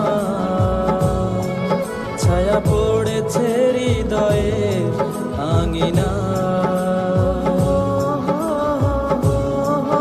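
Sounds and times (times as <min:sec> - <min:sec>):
pop song singing: 0:00.0 - 0:10.0.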